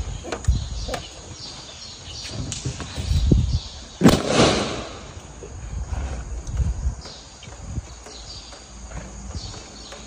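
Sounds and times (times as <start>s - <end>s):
balloon bursting with a bang: 4.0s - 5.1s.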